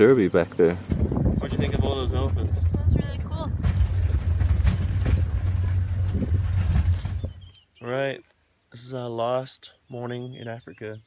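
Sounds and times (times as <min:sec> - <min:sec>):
engine and tyres rumbling: 0:00.0 - 0:07.6
wind noise of moving vehicle: 0:00.8 - 0:07.5.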